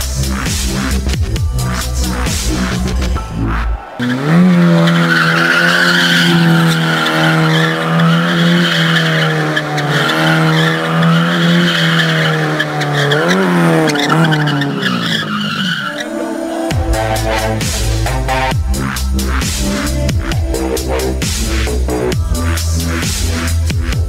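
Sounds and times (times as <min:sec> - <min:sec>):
car engine revving high: 0:00.0 - 0:16.0, 0:16.7 - 0:22.2
tyre squeal: 0:04.0 - 0:16.2.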